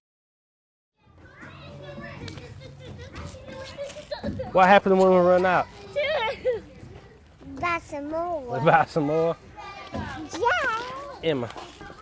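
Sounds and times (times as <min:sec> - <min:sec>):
children's voices: 0:01.0 - 0:04.4, 0:05.6 - 0:12.0
outdoor play-yard background: 0:01.0 - 0:12.0.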